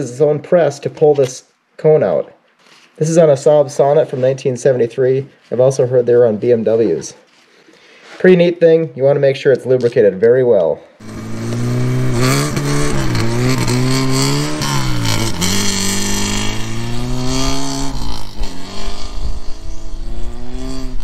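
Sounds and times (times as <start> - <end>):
car engine accelerating: 11.0 - 21.0.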